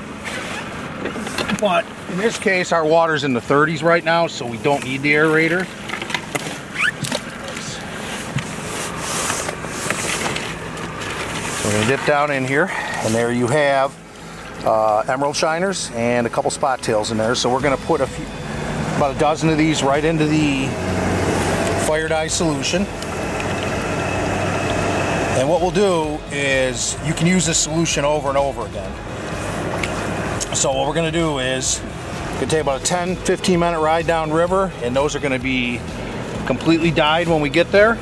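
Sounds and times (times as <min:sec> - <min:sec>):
boat engine idling: 0:00.0 - 0:38.0
water swishing in bucket: 0:00.2 - 0:15.5, 0:16.3 - 0:37.9
low steady hum: 0:01.1 - 0:38.0.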